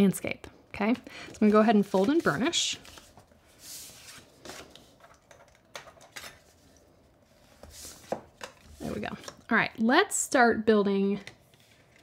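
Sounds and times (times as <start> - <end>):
cardstock rustling and creasing: 1.3 - 6.6.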